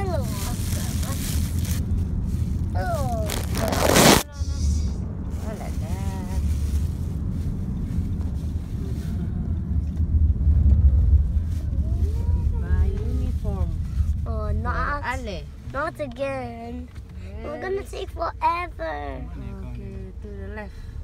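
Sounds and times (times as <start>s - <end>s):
loud rushing noise: 0.0s - 5.4s
car road and engine rumble: 0.0s - 21.0s.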